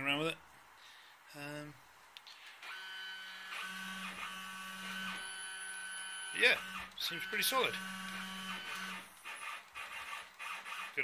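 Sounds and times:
stepper motors whining: 0:02.6 - 0:11.0.

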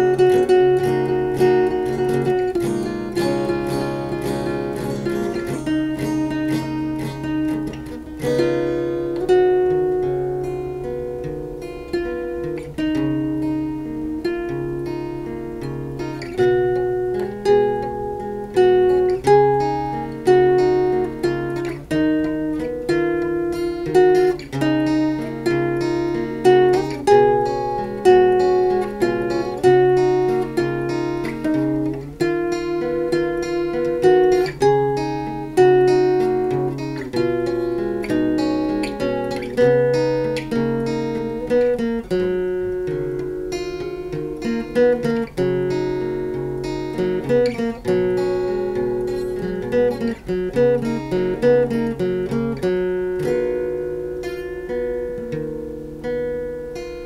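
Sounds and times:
acoustic guitars playing: 0:00.0 - 0:57.0.

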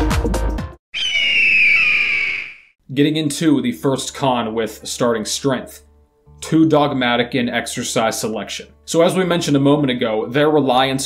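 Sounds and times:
shrill screech: 0:00.9 - 0:02.8.

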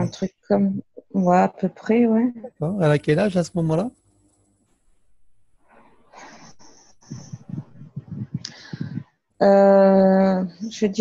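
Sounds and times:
person breathing into microphone: 0:06.2 - 0:09.0
low hesitant murmurs: 0:07.1 - 0:09.0.

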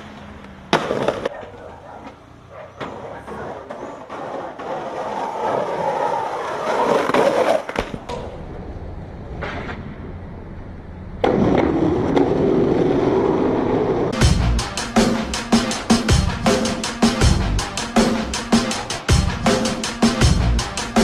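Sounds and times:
skateboard wheels rolling on concrete: 0:00.0 - 0:14.2.

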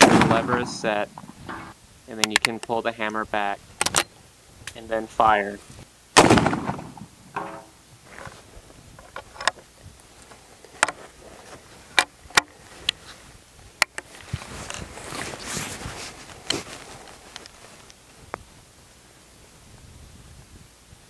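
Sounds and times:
rifle breech metallic clicks: 0:01.5 - 0:02.8, 0:03.8 - 0:04.1
soft rustle: 0:07.9 - 0:19.9.

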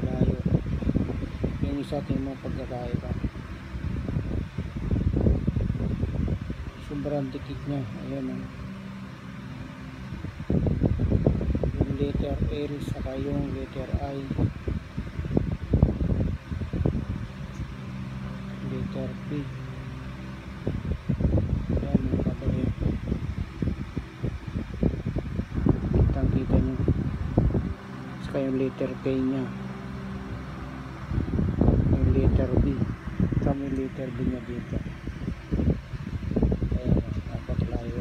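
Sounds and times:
low rumbling noise: 0:00.0 - 0:38.0
steady low hum: 0:00.0 - 0:38.0.

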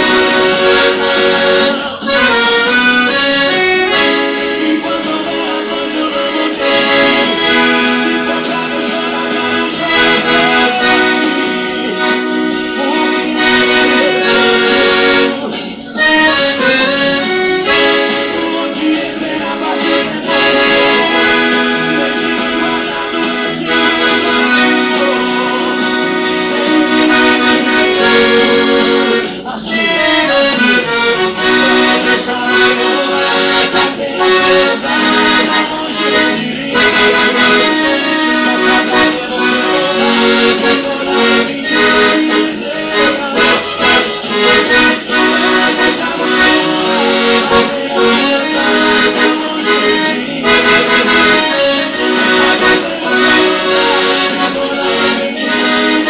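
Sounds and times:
piano accordion melody: 0:00.0 - 0:56.0.

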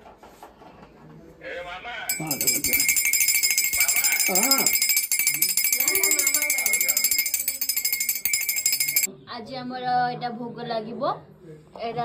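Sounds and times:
hand bell ringing rapidly: 0:02.1 - 0:09.1.

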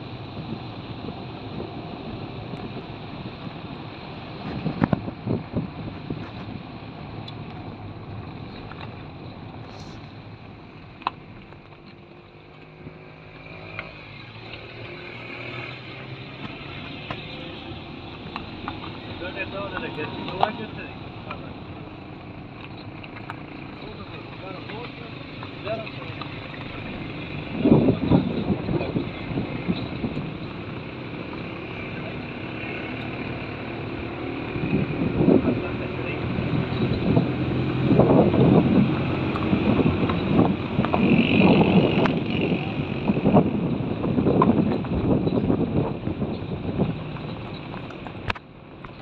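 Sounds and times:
vehicle engine and road noise: 0:00.0 - 0:49.0
people talking indistinctly: 0:19.1 - 0:22.0, 0:23.6 - 0:26.8.

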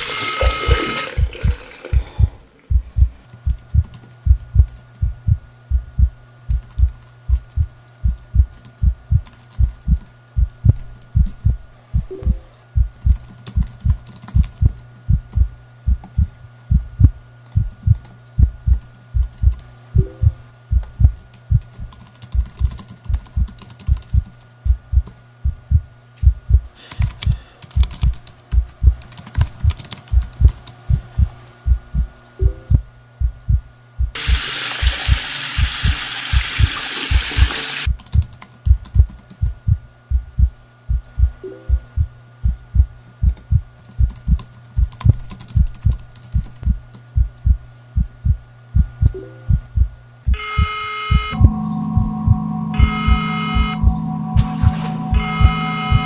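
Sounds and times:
low heartbeat-like thumps: 0:00.7 - 0:56.0
keyboard typing: 0:06.4 - 0:11.4, 0:13.0 - 0:14.9, 0:21.2 - 0:25.2, 0:26.9 - 0:31.1, 0:37.8 - 0:39.6, 0:43.3 - 0:47.1
loud hiss: 0:34.2 - 0:37.9
steady electronic tones: 0:49.0 - 0:56.0.

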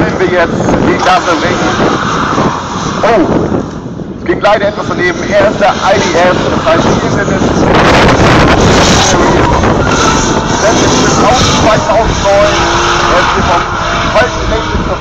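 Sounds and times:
car engine at high revs: 0:00.0 - 0:15.0.

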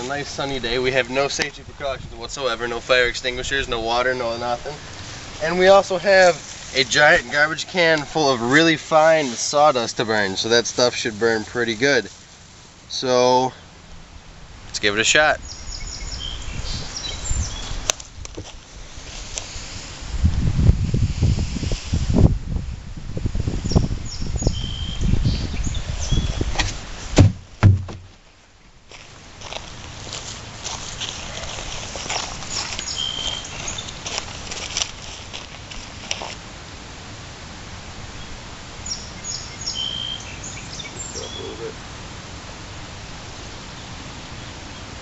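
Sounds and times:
sharp thump: 0:26.5 - 0:28.2
handling knocks: 0:26.6 - 0:28.2
footsteps: 0:28.9 - 0:36.4.

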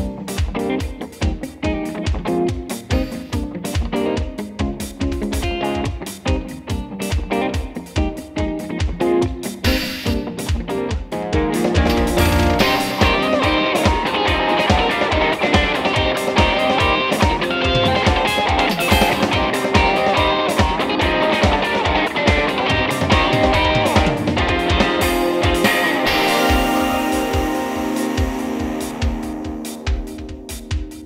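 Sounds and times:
electric guitar: 0:00.0 - 0:31.0
rock backing track with drums: 0:00.0 - 0:31.0.

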